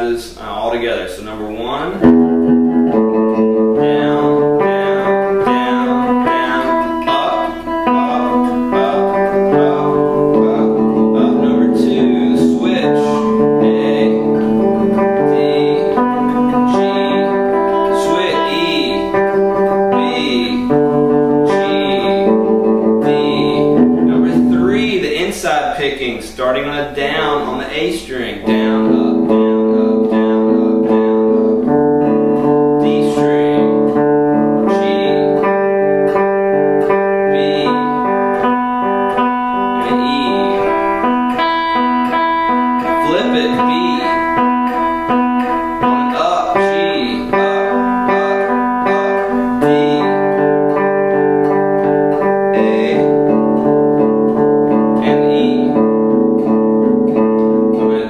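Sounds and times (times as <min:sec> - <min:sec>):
electric guitar picked notes: 0:01.2 - 0:58.0.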